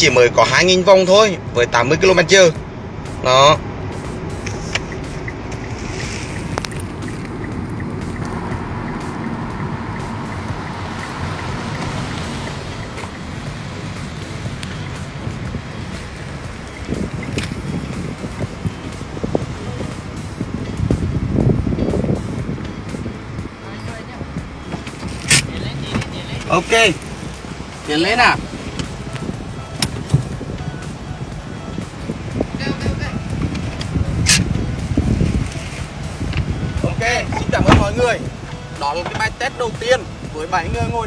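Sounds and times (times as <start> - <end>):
low engine hum: 0.0 - 41.0
road and wind noise: 0.0 - 41.0
louder low rumbles: 3.6 - 38.4.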